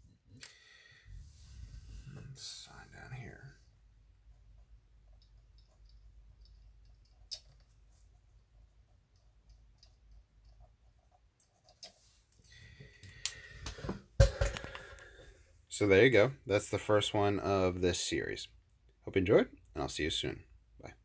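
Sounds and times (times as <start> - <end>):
small clicks: 5.2 - 7.7.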